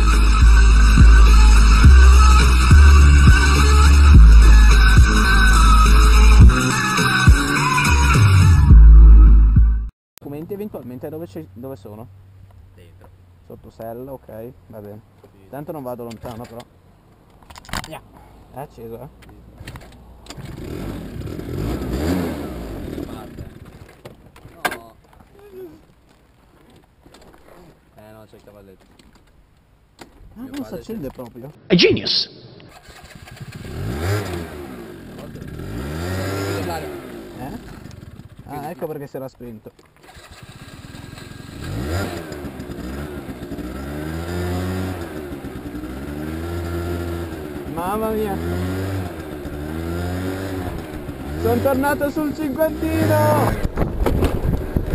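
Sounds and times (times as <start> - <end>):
vehicle engine revving: 20.3 - 23.6, 32.6 - 38.4, 40.0 - 54.9.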